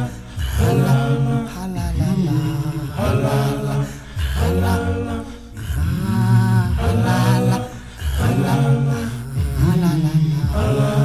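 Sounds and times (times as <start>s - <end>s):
male choir singing a cappella: 0.0s - 11.0s.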